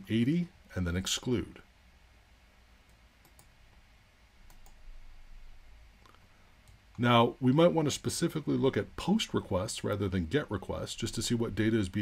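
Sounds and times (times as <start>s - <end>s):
computer mouse clicks: 2.8s - 3.6s, 4.4s - 4.8s.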